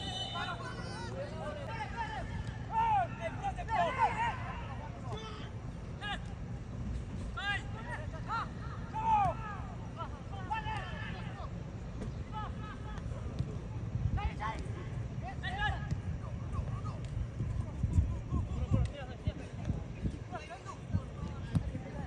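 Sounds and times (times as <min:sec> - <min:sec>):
people shouting: 0:02.0 - 0:05.4, 0:08.4 - 0:09.8.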